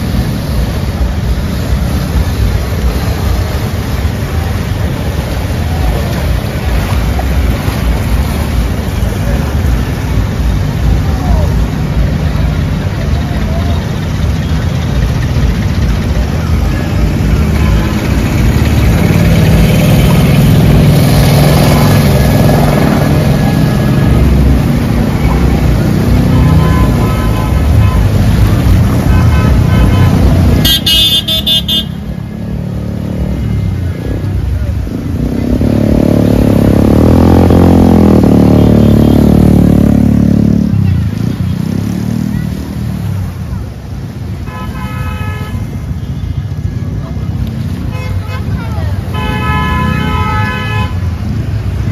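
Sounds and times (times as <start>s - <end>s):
vehicle passing with deep rumble: 0.0s - 44.4s, 45.6s - 51.9s
vehicle engines running: 0.0s - 51.9s
car horn: 26.2s - 32.1s, 44.4s - 46.2s, 47.9s - 51.1s.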